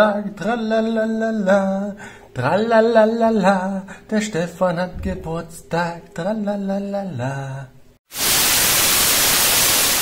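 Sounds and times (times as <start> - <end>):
television static hiss: 8.1 - 10.0.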